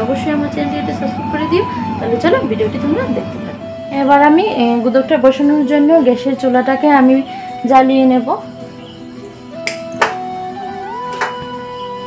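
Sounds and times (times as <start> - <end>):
background music with sustained notes: 0.0 - 12.0.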